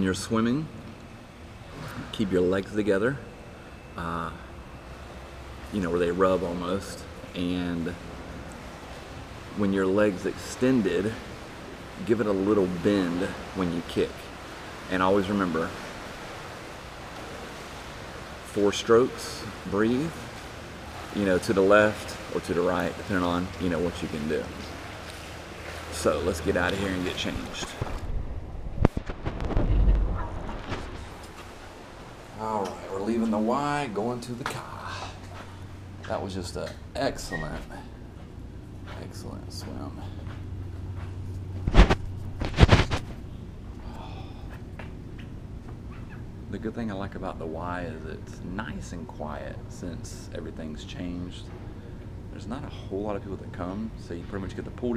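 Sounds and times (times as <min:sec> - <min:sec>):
steady hiss of pool hall: 0:00.0 - 0:29.7, 0:30.4 - 0:54.9
steady low hum: 0:00.0 - 0:54.9.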